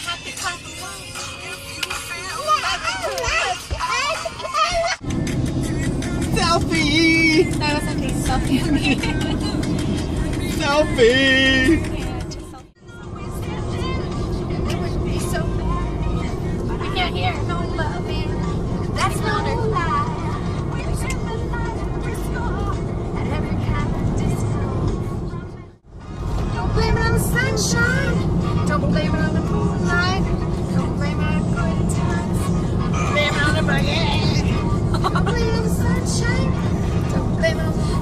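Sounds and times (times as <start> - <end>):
voices: 0.0 - 5.0, 6.0 - 25.6
car road and engine rumble: 0.0 - 38.0
music: 0.0 - 38.0.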